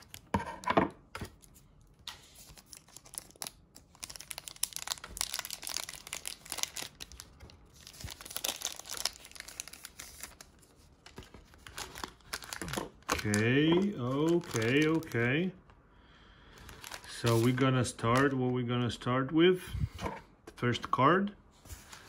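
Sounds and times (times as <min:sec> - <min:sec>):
wrapper crinkling and tearing: 0:00.0 - 0:00.3, 0:01.3 - 0:15.3, 0:16.5 - 0:18.4.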